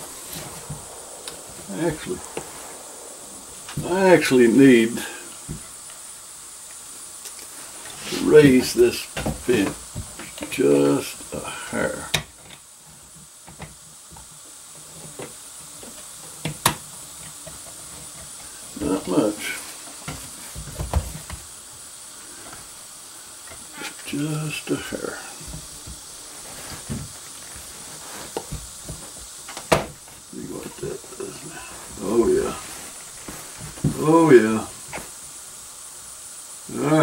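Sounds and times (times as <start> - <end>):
low muttering: 0.0 - 12.1.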